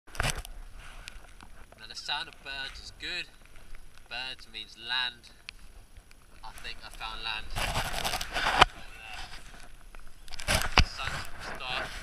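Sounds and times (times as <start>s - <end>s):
plastic rain jacket rustling: 0.1s - 4.2s, 5.4s - 12.0s.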